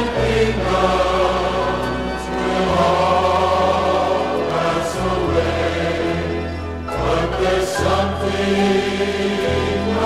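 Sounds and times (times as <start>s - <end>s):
choir singing a slow hymn: 0.0s - 10.0s.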